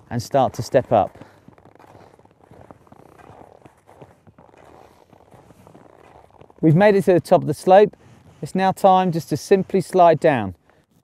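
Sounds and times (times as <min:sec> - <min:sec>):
skis crunching on snow: 0:00.0 - 0:11.0.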